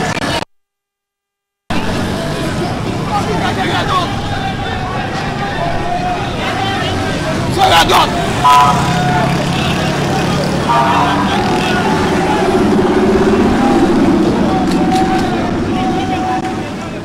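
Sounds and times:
street noise: 0:00.0 - 0:00.5, 0:01.7 - 0:17.0
people's voices: 0:01.7 - 0:17.0
car engine driving past: 0:08.1 - 0:17.0.

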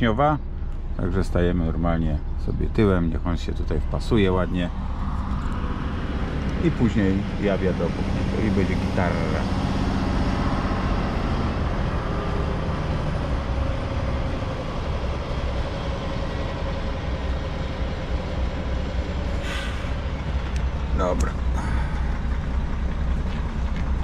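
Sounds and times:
diesel engine low rumble: 0:00.0 - 0:24.0
short hiss: 0:19.4 - 0:20.0.

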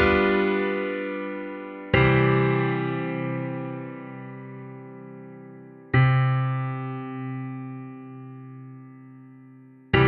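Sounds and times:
piano chord: 0:00.0 - 0:10.0.

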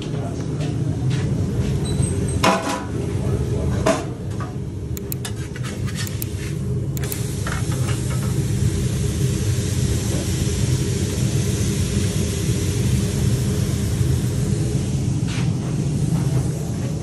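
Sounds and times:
food sizzling on a griddle: 0:07.2 - 0:14.2
low running rumble: 0:08.6 - 0:17.0.

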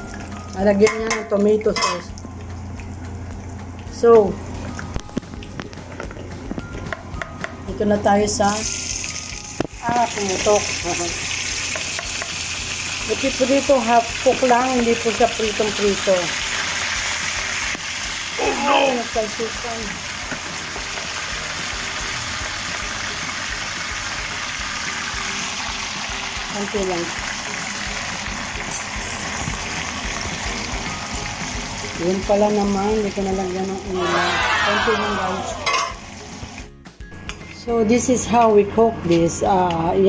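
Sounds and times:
okra sizzling in oil: 0:08.5 - 0:32.0.

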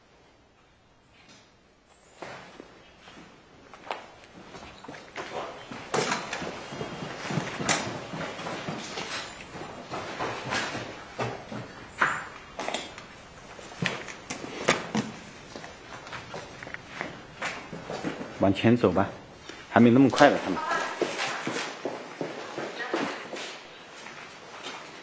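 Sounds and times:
footsteps in a large hall: 0:02.2 - 0:25.0.

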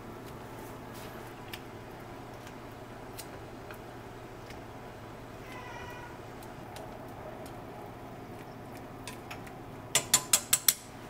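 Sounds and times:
short meow-like cry: 0:05.4 - 0:06.2.

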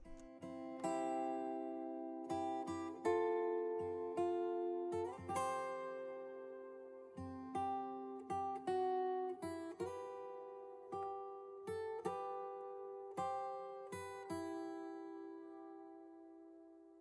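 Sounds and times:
plucked guitar music: 0:00.0 - 0:17.0.

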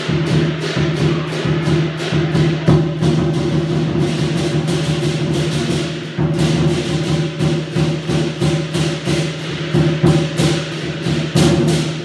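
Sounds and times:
cymbals clashing: 0:00.0 - 0:12.0
drum: 0:00.0 - 0:12.0.

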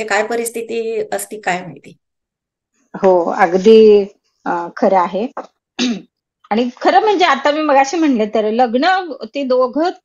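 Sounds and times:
woman speaking: 0:00.0 - 0:02.0, 0:02.9 - 0:05.6, 0:06.4 - 0:10.0
throat clearing: 0:05.8 - 0:06.1.

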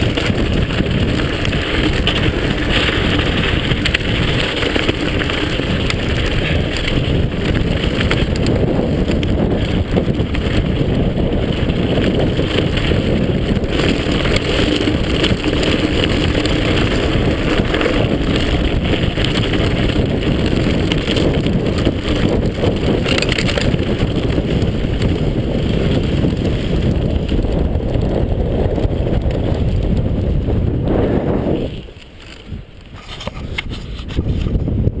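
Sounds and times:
mountain bike rattling on rocky trail: 0:00.0 - 0:34.9
wind buffeting microphone: 0:00.0 - 0:35.0.

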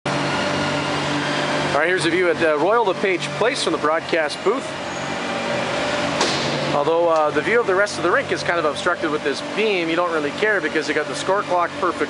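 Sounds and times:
man speaking: 0:01.7 - 0:04.7, 0:06.7 - 0:12.0.

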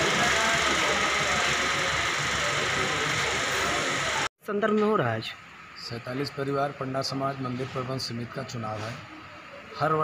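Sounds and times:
faint indistinct voices: 0:00.0 - 0:04.3, 0:05.9 - 0:10.0
steady background noise: 0:00.0 - 0:10.0.

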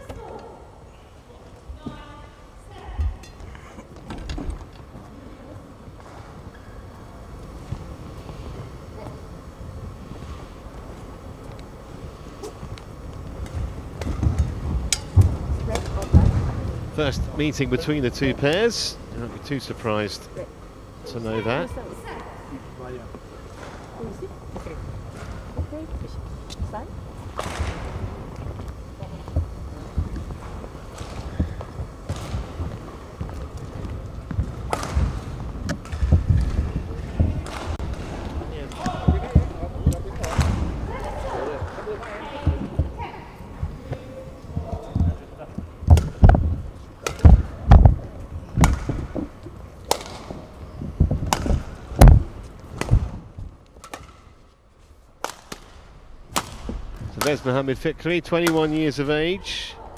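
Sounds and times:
badminton racket hitting shuttlecock: 0:34.4 - 0:36.6, 0:47.0 - 0:47.9, 0:49.8 - 0:50.5, 0:55.2 - 0:57.3.

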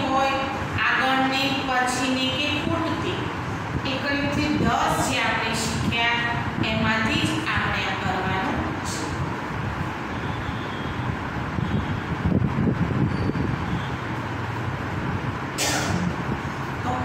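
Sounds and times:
woman's voice: 0:00.0 - 0:09.2
low rumbling noise: 0:00.0 - 0:17.0.

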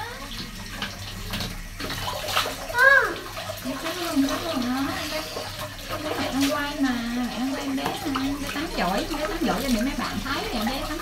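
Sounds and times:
water splashing in bathtub: 0:00.0 - 0:11.0.

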